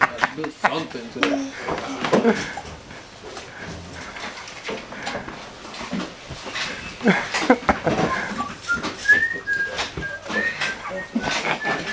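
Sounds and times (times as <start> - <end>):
people talking: 0.0 - 2.8, 7.0 - 11.9
person whistling: 8.0 - 11.9.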